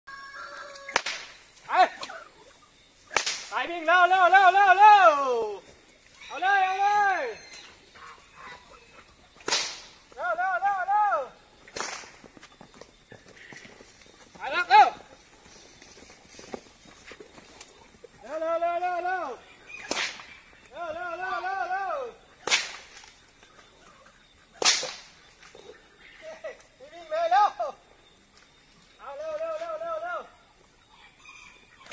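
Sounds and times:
whip cracking: 0:00.9 - 0:01.4, 0:03.1 - 0:03.6, 0:09.4 - 0:10.0, 0:11.7 - 0:12.3, 0:19.8 - 0:20.3, 0:22.4 - 0:23.2, 0:24.6 - 0:25.2
man calling: 0:01.6 - 0:02.4, 0:03.5 - 0:07.6, 0:10.1 - 0:11.5, 0:14.4 - 0:15.1, 0:18.2 - 0:19.5, 0:20.7 - 0:22.2, 0:26.2 - 0:27.8, 0:29.0 - 0:30.4.

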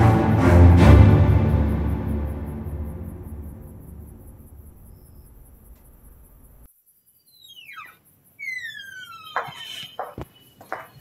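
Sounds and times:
dramatic background music: 0:00.0 - 0:05.4
high squeaks sliding down: 0:07.3 - 0:11.0.

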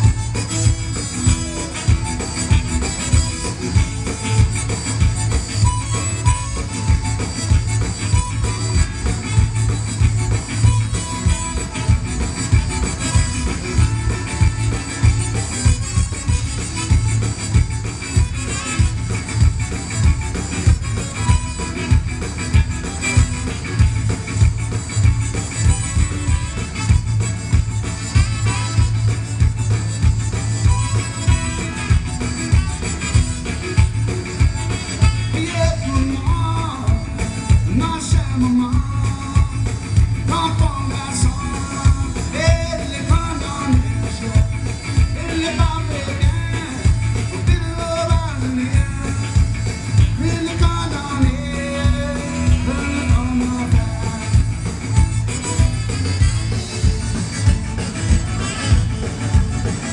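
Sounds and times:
saxophone: 0:00.0 - 0:39.2, 0:39.9 - 0:59.9
accordion: 0:00.0 - 0:59.9
band playing: 0:00.0 - 0:59.9
bass and drum beat: 0:00.0 - 0:59.9.

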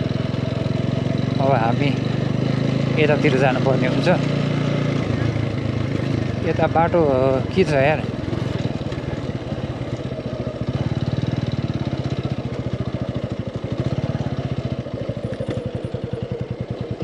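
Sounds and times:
motorcycle engine running: 0:00.0 - 0:17.0.

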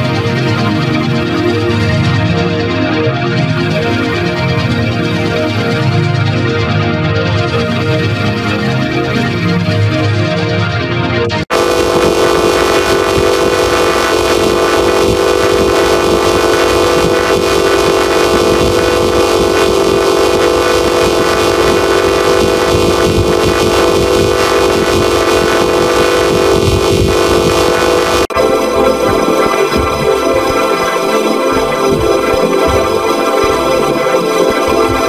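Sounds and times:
distorted buzzing chord: 0:11.5 - 0:35.0.

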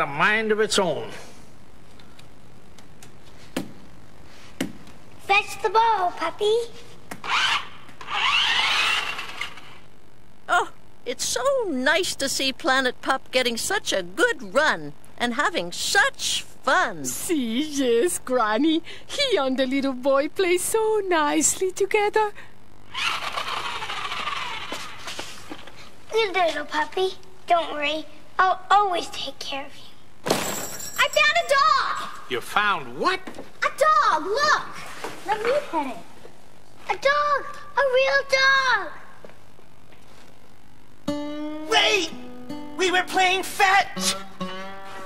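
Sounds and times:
toy robot whirring: 0:07.2 - 0:09.8, 0:22.9 - 0:25.0
faint steady hiss: 0:09.3 - 0:23.4, 0:24.6 - 0:45.0.

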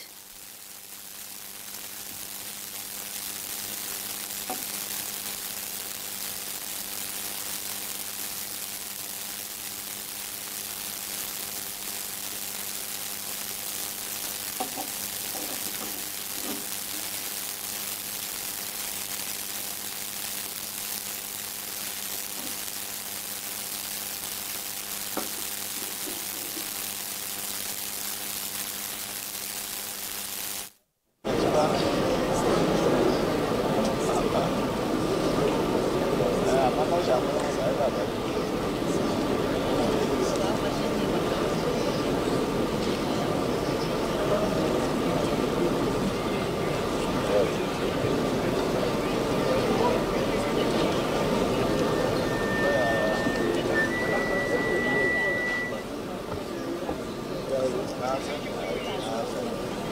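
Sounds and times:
broadcast hiss and electrical hum: 0:00.0 - 0:59.9
faint distant voices: 0:31.3 - 0:59.9.

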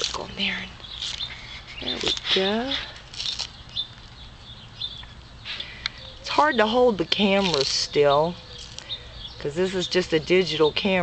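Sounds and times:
tortoise crunching lettuce: 0:00.0 - 0:05.9, 0:06.6 - 0:09.0.

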